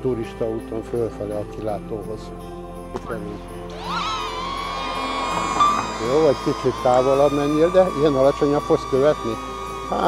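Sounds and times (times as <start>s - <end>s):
drone propellers whining: 4.0s - 8.4s.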